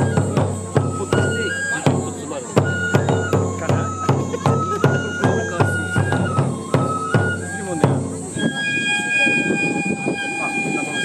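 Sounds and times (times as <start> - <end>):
flute holding high notes: 0.0 - 11.0.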